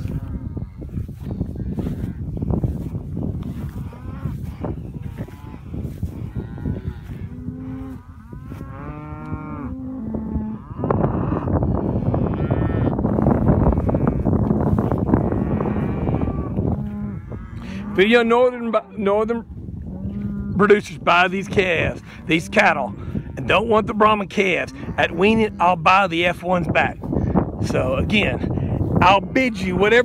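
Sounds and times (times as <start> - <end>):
cattle mooing: 3.4 - 26.4.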